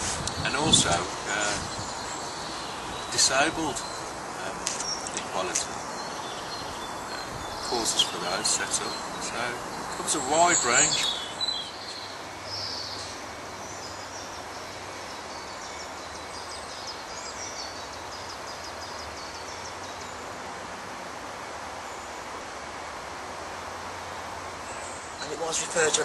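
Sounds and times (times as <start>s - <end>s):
steady background ambience: 0.0s - 17.3s.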